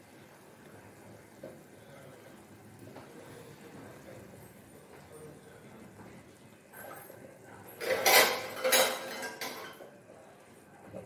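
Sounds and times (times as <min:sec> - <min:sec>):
metal cookware clattering: 0:06.8 - 0:09.9.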